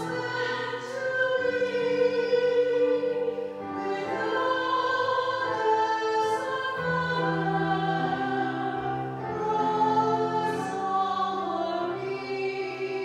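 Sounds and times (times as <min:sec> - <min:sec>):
choir singing a slow hymn: 0:00.0 - 0:13.0.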